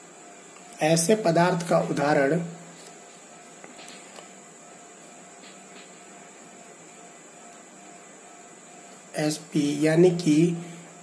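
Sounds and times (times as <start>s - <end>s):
faint high-pitched whine: 0.0s - 11.0s
recording hiss: 0.0s - 11.0s.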